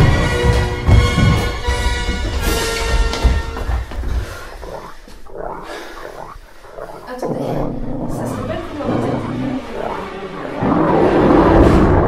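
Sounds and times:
low rough animal growl: 3.7s - 12.0s.

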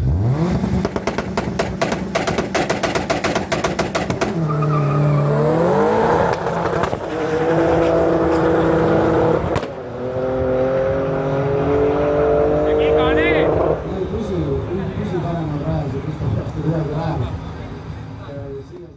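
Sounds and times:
drag car engines revving: 0.0s - 18.9s.

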